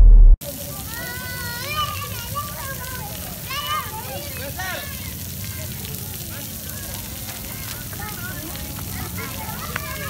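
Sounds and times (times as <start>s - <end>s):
faint children's voices: 0.4s - 10.0s
fountain jets spraying on paving: 0.4s - 10.0s.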